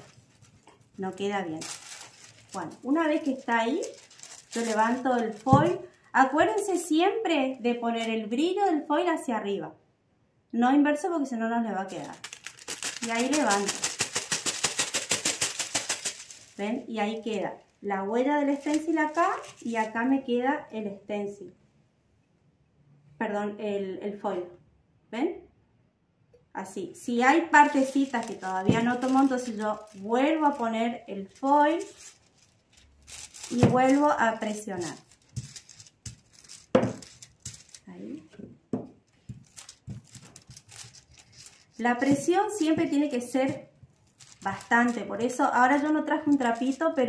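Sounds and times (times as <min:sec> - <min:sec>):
foil crinkling and crackling: 0:00.0 - 0:06.8, 0:11.9 - 0:17.4, 0:18.4 - 0:20.0, 0:27.2 - 0:37.9, 0:39.1 - 0:47.0.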